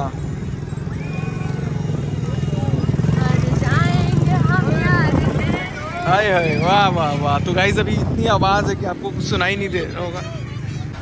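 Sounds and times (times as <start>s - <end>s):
loud motor engine running: 0.0s - 11.0s
voices: 0.0s - 11.0s.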